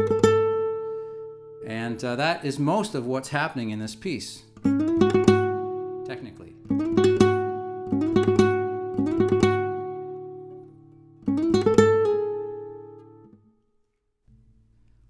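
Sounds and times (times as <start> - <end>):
flamenco guitar picked notes: 0.0 - 13.6.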